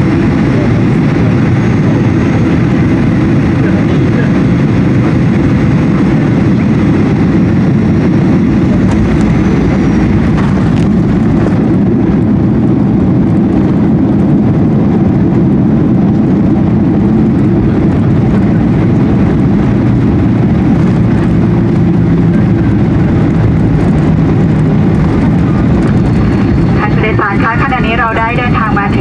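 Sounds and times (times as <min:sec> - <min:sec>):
jet engines roaring in cabin: 0:00.0 - 0:29.0
woman announcing over cabin speaker: 0:26.4 - 0:29.0.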